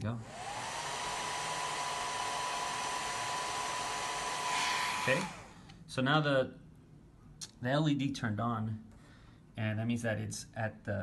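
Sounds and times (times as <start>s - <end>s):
hair dryer air rushing: 0.2s - 5.7s
hair dryer motor whine: 0.2s - 5.7s.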